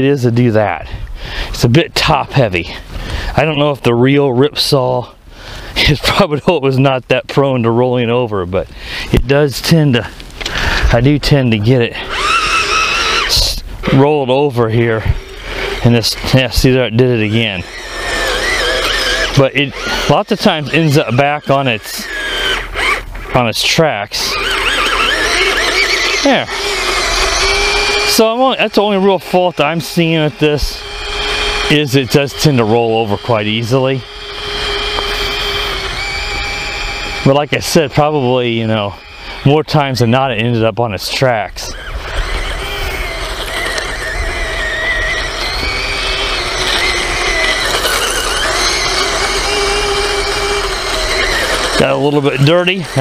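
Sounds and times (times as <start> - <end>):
steady low hum: 8.3 - 53.0
toy tank electric motor whine: 11.9 - 13.6, 14.9 - 53.0.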